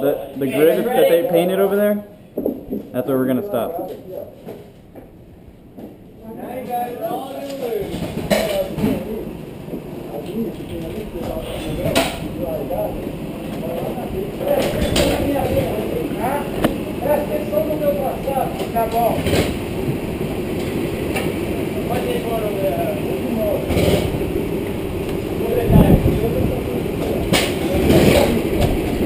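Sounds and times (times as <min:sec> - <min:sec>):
indistinct voices: 0:06.1 - 0:29.0
go-kart engines running: 0:07.8 - 0:29.0.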